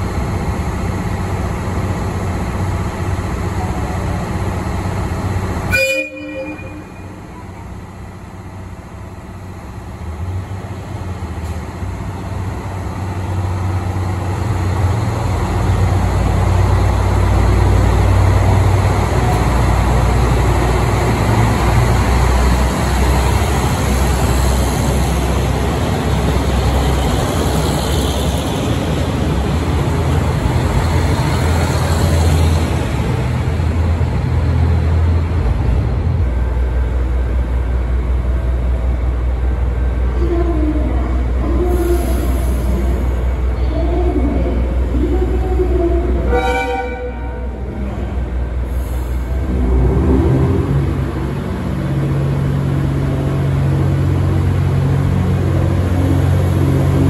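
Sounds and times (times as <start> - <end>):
diesel railcar engines rumbling: 0.0 - 57.0.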